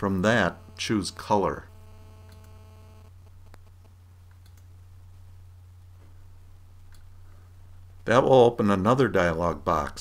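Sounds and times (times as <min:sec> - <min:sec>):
faint buzz: 0:00.0 - 0:08.0
low electrical hum: 0:00.0 - 0:10.0
computer mouse clicks: 0:02.2 - 0:02.6, 0:03.5 - 0:04.7, 0:06.9 - 0:07.1.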